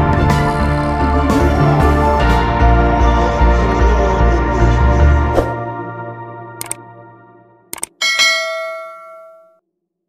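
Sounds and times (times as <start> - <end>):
click: 6.6 - 6.8, 7.7 - 8.0
bright bell chime: 8.0 - 9.6.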